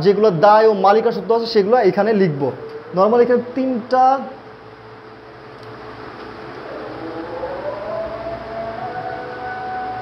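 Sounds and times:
siren winding up: 6.6 - 10.0.

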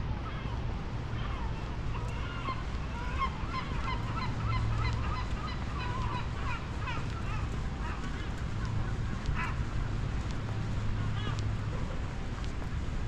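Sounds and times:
low steady rumble: 0.0 - 13.0
flock of birds calling: 0.2 - 9.8, 11.0 - 11.4.

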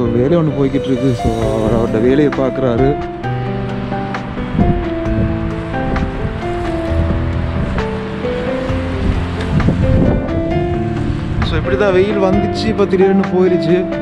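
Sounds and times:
wind on microphone: 0.0 - 12.9
background music melody: 0.0 - 14.0.

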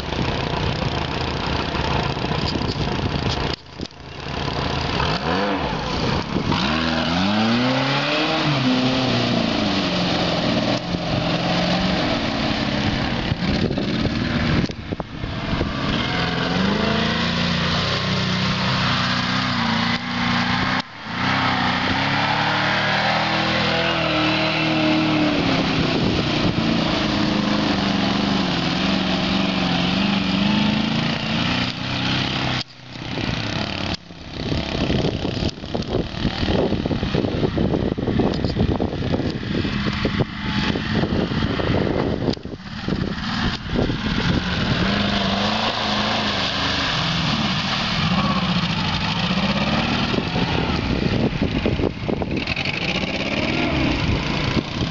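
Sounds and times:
atv engine revving: 0.0 - 54.9.

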